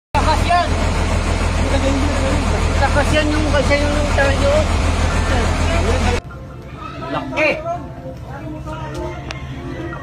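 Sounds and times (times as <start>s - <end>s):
loud low rumble: 0.2s - 6.2s
people's voices: 0.2s - 10.0s.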